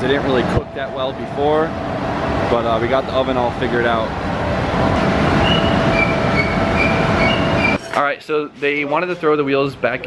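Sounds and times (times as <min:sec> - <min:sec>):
machinery roaring: 0:00.0 - 0:07.8
short high squeaks: 0:05.4 - 0:07.8.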